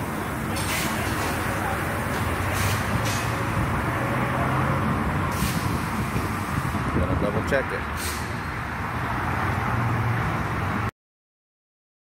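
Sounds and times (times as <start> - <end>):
short high hisses: 5.3 - 6.6, 8.0 - 8.4.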